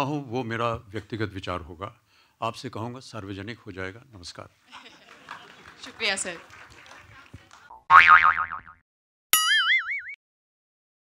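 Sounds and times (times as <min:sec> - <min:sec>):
cartoon boing effect: 0:07.9 - 0:08.8, 0:09.4 - 0:10.2.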